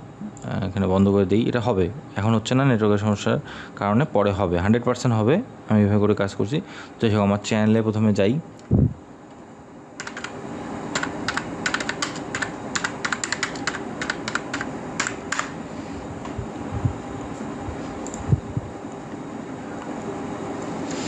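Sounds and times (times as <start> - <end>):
steady low hum: 0.0 - 21.0
keyboard typing clicks: 10.0 - 15.6.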